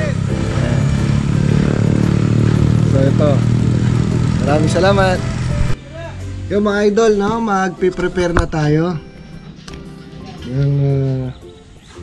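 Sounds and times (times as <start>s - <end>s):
engine humming steadily: 0.0s - 7.4s.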